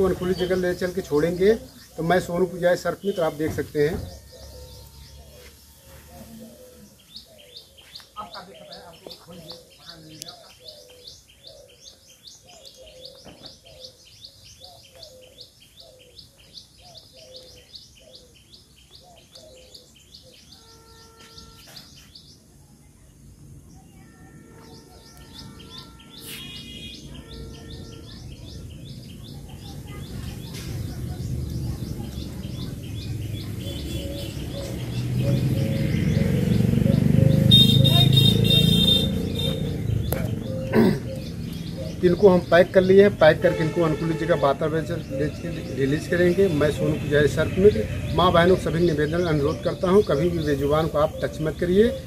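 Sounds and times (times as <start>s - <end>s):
birds chirping: 0.0s - 52.0s
faint background voices: 22.6s - 42.9s.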